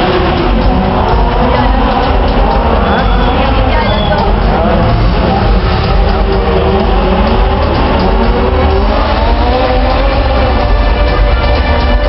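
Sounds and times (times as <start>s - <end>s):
car engines revving: 0.0s - 12.0s
music: 0.0s - 12.0s.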